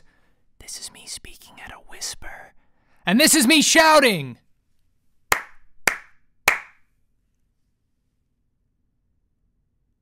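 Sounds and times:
sharp hand clap: 0:05.3 - 0:06.9.

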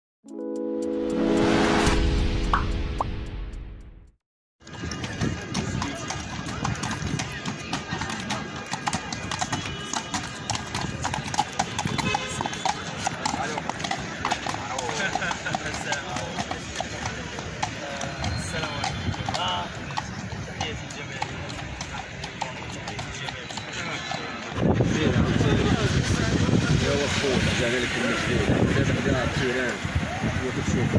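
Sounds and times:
intro chord: 0:00.3 - 0:04.1
crowd chatter: 0:04.6 - 0:30.9
horse hooves clip-clopping on pavement: 0:04.6 - 0:30.9.

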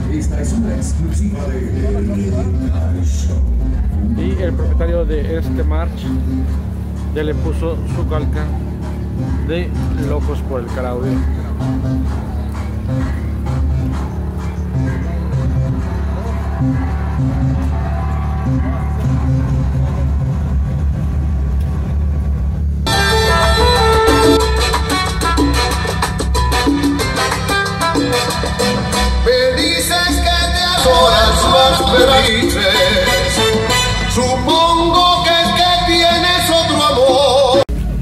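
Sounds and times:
salsa music from car stereo: 0:00.0 - 0:21.9, 0:22.8 - 0:38.0.

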